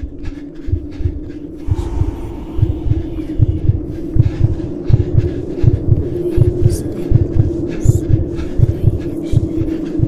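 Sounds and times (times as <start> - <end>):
heartbeat-like double thumps: 0.0 - 10.0
steady low hum: 0.0 - 10.0.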